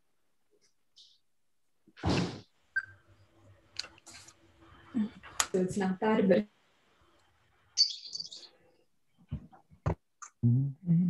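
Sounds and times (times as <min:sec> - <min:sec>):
high-pitched chirping: 0:07.8 - 0:08.5.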